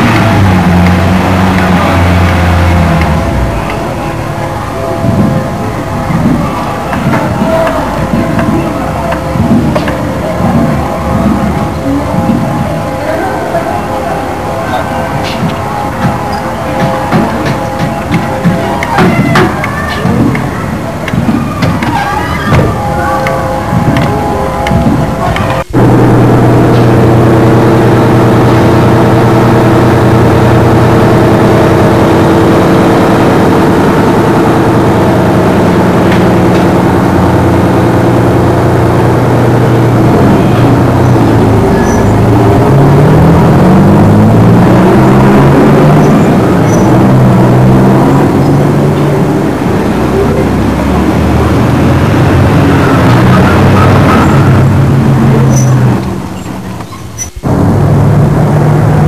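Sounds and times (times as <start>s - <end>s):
vehicle engine revving: 0.0s - 19.1s, 20.1s - 59.0s.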